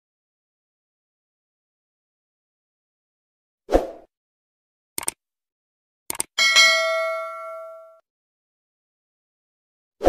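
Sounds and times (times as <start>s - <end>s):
quick clicks: 5.0s - 5.2s, 6.1s - 6.4s
notification bell ding: 6.4s - 8.0s.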